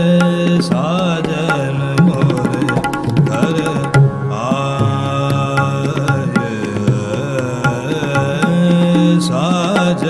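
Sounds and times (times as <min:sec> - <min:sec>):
man singing classical vocals: 0:00.0 - 0:10.0
tabla strokes: 0:00.0 - 0:10.0.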